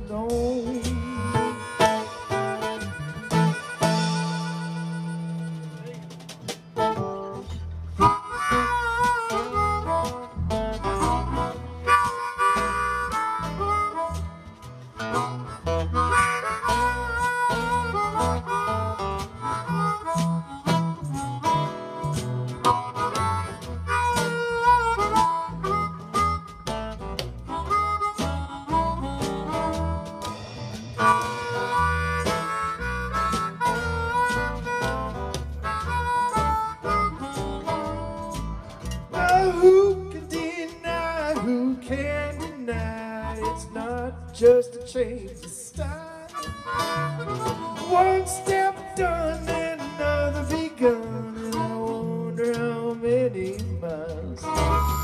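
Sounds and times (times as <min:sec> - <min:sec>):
harmonica solo: 0:00.0 - 0:44.5, 0:46.2 - 0:52.6, 0:54.4 - 0:55.0
bass: 0:00.0 - 0:55.0
strummed acoustic guitar: 0:00.0 - 0:55.0
steady drum beat: 0:00.2 - 0:07.2, 0:08.0 - 0:41.6.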